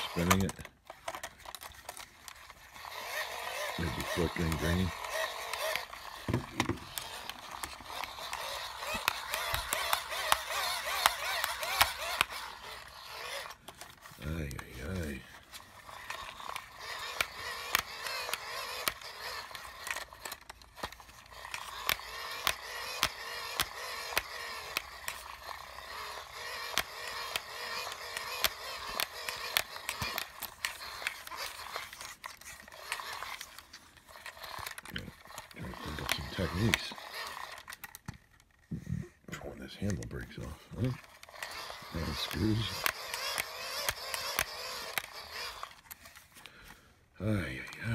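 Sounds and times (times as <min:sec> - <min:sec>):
plastic clicks from spinning handle: 0:00.0 - 0:38.7, 0:39.3 - 0:46.3
hand crank generator whirring: 0:00.0 - 0:38.8, 0:39.4 - 0:46.8.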